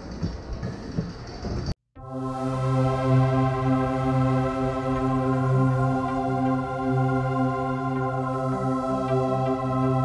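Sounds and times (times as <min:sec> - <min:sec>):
noisy station background: 0:00.0 - 0:10.0.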